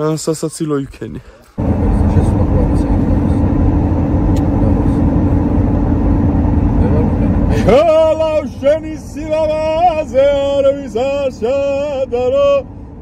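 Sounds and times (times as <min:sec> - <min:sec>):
car cabin rumble: 0:01.6 - 0:13.0
man singing loudly: 0:07.6 - 0:12.7.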